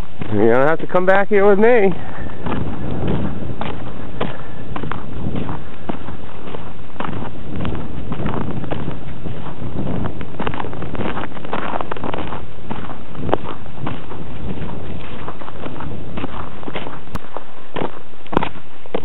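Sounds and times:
footsteps crunching on snow: 0.0 - 19.0
wind buffeting microphone: 0.0 - 19.0.

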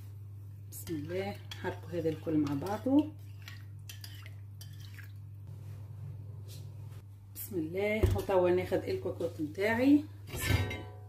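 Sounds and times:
spoon clinking and scraping bowl: 0.8 - 5.2.

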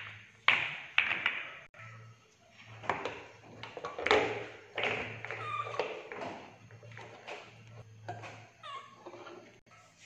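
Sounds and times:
billiard balls clacking on plastic: 0.0 - 1.7, 2.6 - 9.6.

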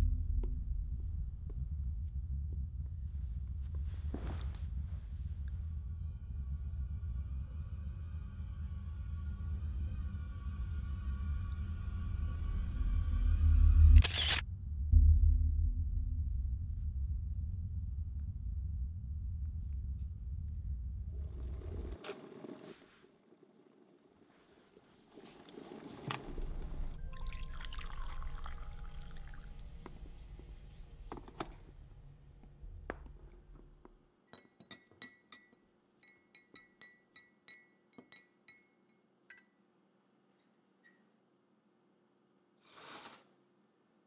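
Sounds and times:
low steady rumble: 0.0 - 22.0
camera shutter click: 14.0 - 14.4.

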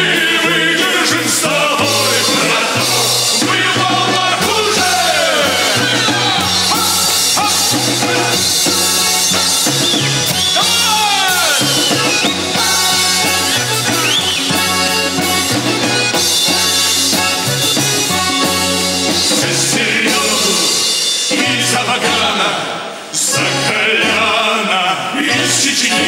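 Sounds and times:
male vocal group singing: 0.0 - 14.2, 19.1 - 26.0
bass line: 0.0 - 20.8
button accordion: 0.0 - 22.4.

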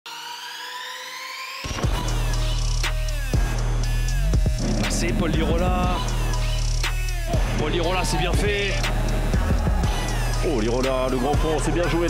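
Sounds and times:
electronic beat: 1.9 - 12.0
deep falling bass drop: 4.4 - 6.6
synth tone rising in pitch: 4.5 - 6.4.

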